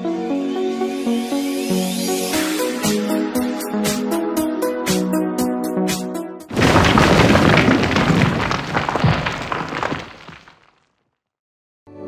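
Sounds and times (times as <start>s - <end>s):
loud boom: 6.5s - 10.5s
rumbling crumbling stone noise: 6.5s - 10.8s.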